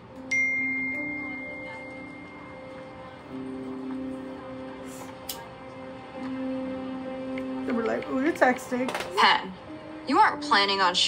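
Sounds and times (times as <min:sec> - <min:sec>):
high bell-like note: 0:00.2 - 0:02.7.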